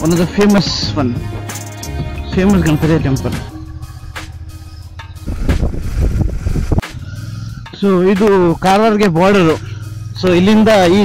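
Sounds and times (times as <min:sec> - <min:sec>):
motorcycle engine running: 0:02.0 - 0:11.0
wind rumble on microphone: 0:05.2 - 0:06.9.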